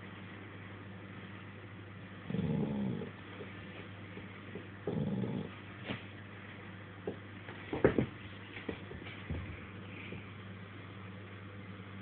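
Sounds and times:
dog grunting: 2.2 - 3.2, 4.8 - 5.7.

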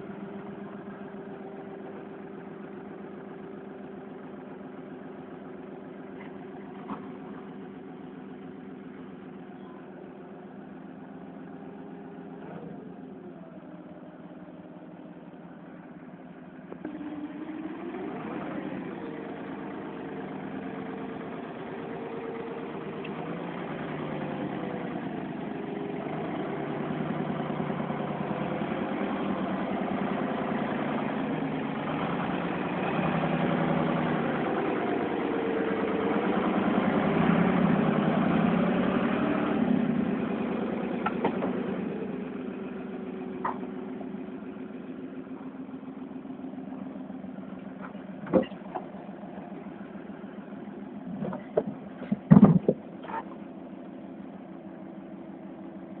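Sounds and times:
forklift engine revving: 0.0 - 56.0.

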